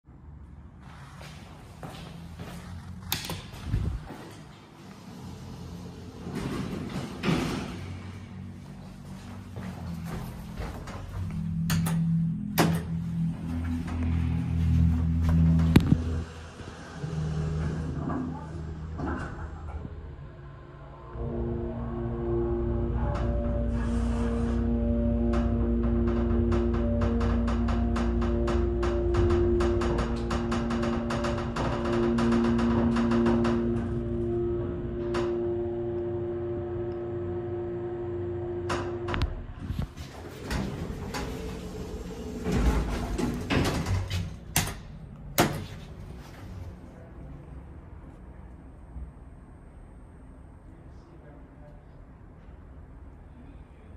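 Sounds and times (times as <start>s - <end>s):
elevator machinery hum: 1.2s - 53.9s.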